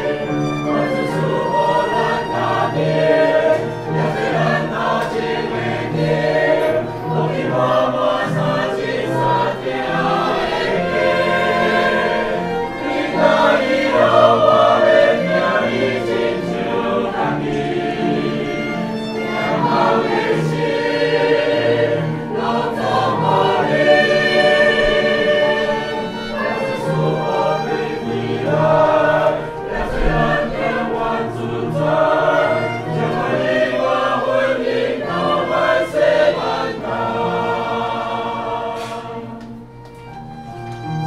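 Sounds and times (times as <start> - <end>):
choir singing a hymn: 0.0 - 41.0
violin accompaniment: 0.0 - 41.0.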